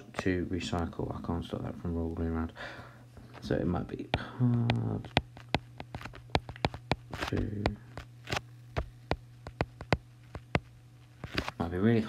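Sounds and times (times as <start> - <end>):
low electrical hum: 0.0 - 12.0
stylus tapping on tablet screen: 4.1 - 8.1, 8.8 - 11.4.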